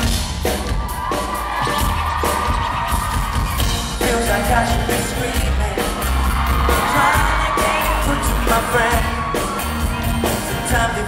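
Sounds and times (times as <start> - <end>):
live pop music with singing: 0.0 - 11.0.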